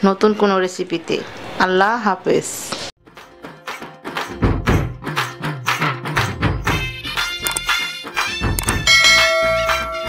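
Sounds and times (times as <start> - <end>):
background music with beat: 3.1 - 10.0
bright bell-like chime: 8.8 - 10.0.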